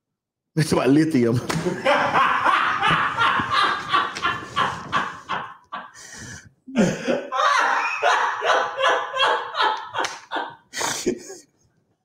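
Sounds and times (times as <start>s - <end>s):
woman laughing hard: 1.7s - 6.0s, 6.7s - 11.4s.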